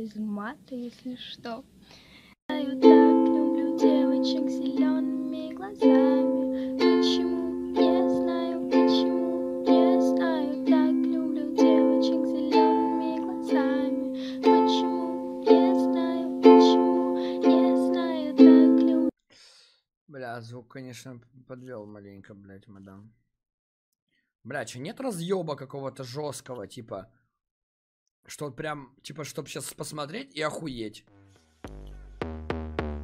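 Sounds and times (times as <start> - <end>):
ukulele strumming chords: 2.5 - 19.1.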